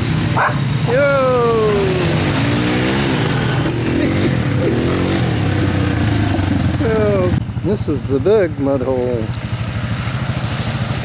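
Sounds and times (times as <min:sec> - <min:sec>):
atv engine revving through mud: 0:00.0 - 0:11.0
atv passing close: 0:00.0 - 0:11.0
low engine rumble: 0:00.0 - 0:11.0.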